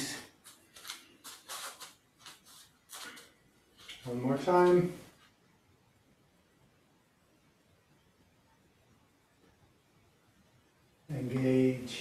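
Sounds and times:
footsteps shuffling on a floor mat: 0.0 - 4.2.

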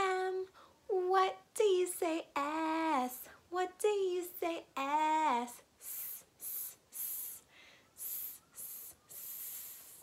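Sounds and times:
woman hissing sss sound: 5.8 - 10.0.

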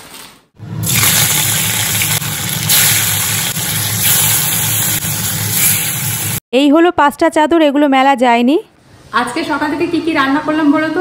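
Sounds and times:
fish frying in hot oil: 0.8 - 6.4.

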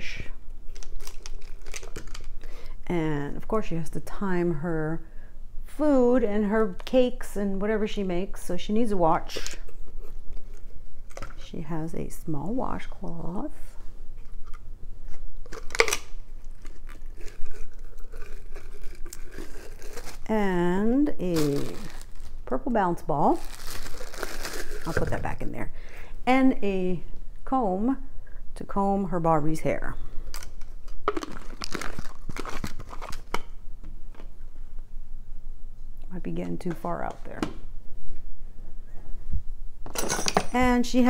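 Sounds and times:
packaging rustling: 0.7 - 2.5, 14.2 - 20.3, 21.2 - 22.5, 23.3 - 25.3, 30.3 - 33.4.

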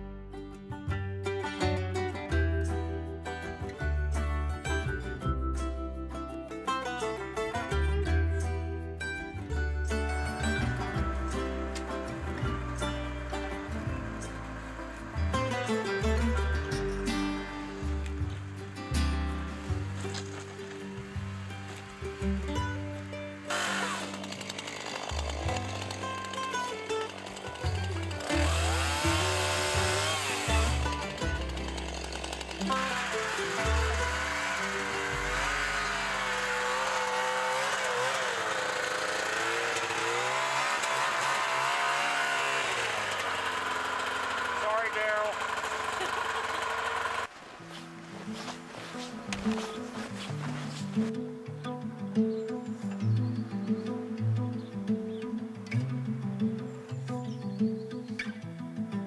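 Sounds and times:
background music: 0.0 - 38.5
chainsaw revving: 10.0 - 50.7.

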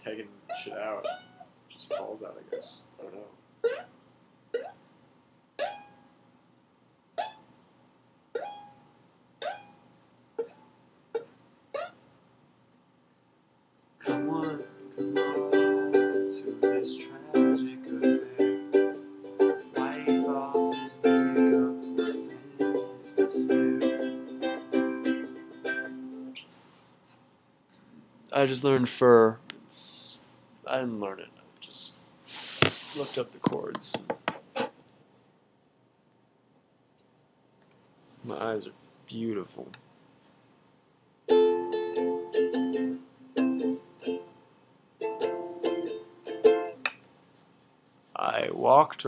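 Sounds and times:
ukulele notes plucked: 5.6 - 5.9, 8.4 - 8.7, 9.4 - 9.8, 14.0 - 26.4, 41.3 - 44.3, 45.0 - 46.9
ukulele chords strummed: 14.0 - 26.4, 41.3 - 44.4, 45.0 - 46.9.

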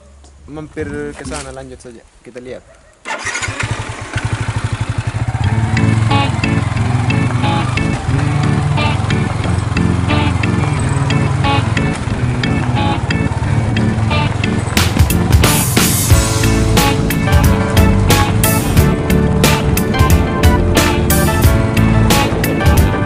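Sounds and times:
motorcycle engine running: 3.1 - 23.0.

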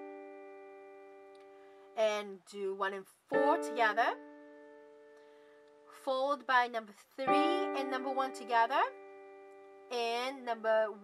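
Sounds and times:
piano chord: 0.0 - 1.7, 3.3 - 6.0, 7.2 - 10.0.

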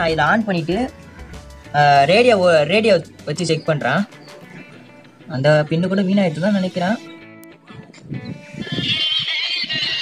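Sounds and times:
music with high wavering melody: 0.0 - 9.1.

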